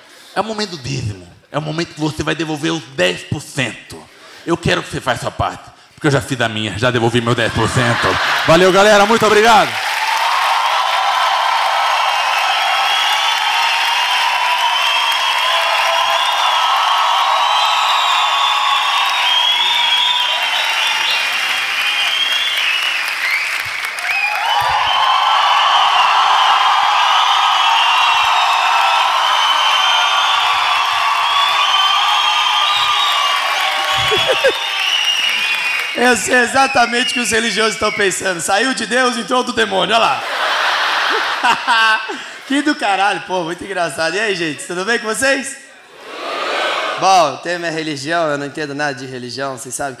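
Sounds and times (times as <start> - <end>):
audience applauding and cheering: 7.1 - 38.2.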